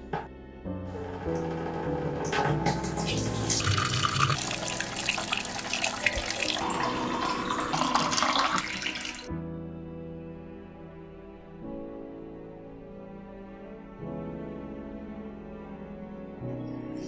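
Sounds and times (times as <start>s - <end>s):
soft background music: 0.0s - 17.0s
water running from a tap: 1.4s - 9.3s.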